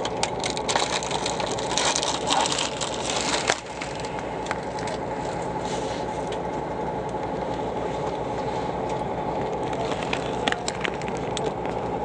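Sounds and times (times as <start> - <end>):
vehicle engine drone: 0.0 - 12.0
rattling and clicking: 8.9 - 12.0.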